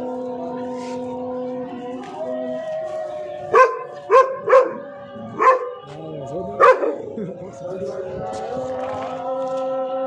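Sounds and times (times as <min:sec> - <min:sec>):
dog barking: 0:03.5 - 0:05.8, 0:06.6 - 0:07.1.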